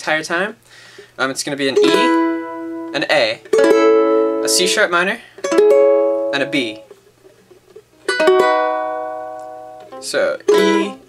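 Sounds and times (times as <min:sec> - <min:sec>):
ukulele chord strummed: 0:01.7 - 0:11.0.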